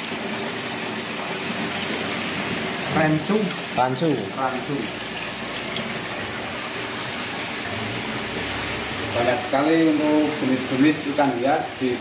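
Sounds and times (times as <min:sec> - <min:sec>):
running water churning: 0:00.0 - 0:12.0.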